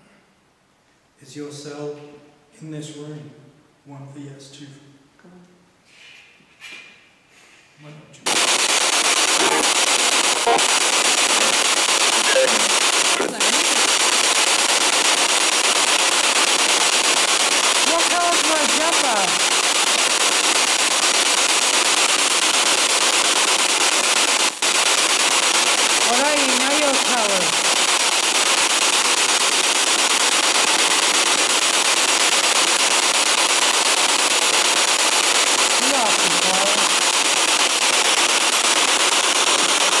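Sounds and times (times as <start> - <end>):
radio static hiss: 7.8 - 40.0
warbling voice-like sounds: 9.3 - 14.0.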